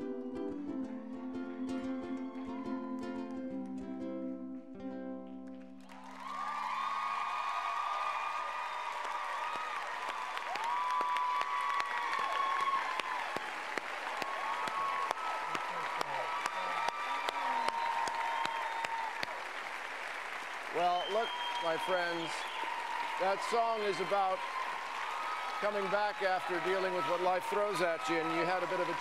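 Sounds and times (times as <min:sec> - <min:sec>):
whoops and shouts: 0:02.2 - 0:03.4, 0:06.0 - 0:19.4
audience clapping: 0:05.5 - 0:29.0.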